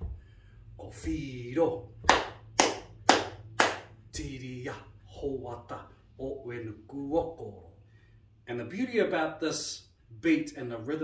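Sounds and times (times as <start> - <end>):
hand claps: 2.0 - 4.0.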